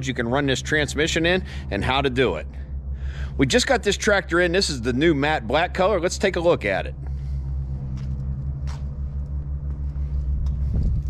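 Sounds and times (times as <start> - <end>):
tractor diesel engine idling: 0.0 - 10.7.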